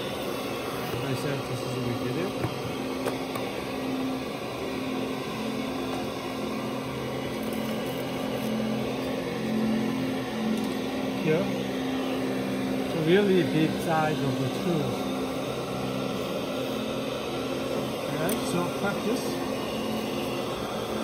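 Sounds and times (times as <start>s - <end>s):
electric motor hum: 0.0s - 21.0s.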